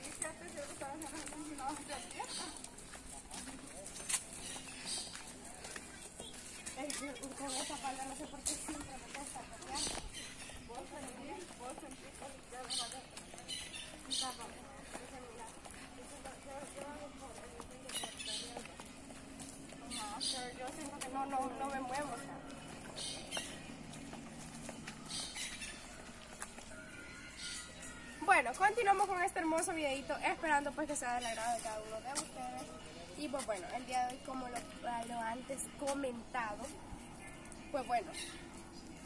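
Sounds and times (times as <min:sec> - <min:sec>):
woman talking: 0:00.0 - 0:03.8, 0:06.7 - 0:13.4, 0:14.0 - 0:19.0, 0:19.8 - 0:22.6, 0:28.2 - 0:36.8, 0:37.5 - 0:38.3
footsteps on concrete: 0:00.0 - 0:39.0.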